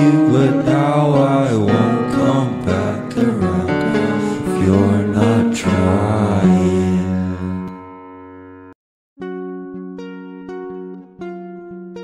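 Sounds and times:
person singing long notes: 0:00.0 - 0:07.8
musical accompaniment: 0:00.0 - 0:12.0.

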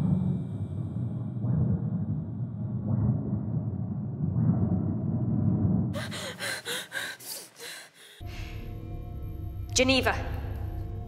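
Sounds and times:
low dark rumbling drone: 0:00.0 - 0:06.8, 0:08.2 - 0:11.0
woman gasping for breath: 0:06.0 - 0:08.7.

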